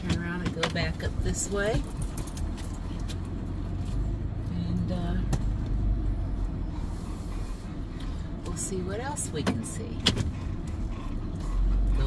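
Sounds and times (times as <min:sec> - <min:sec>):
van engine and road rumble: 0:00.0 - 0:12.0.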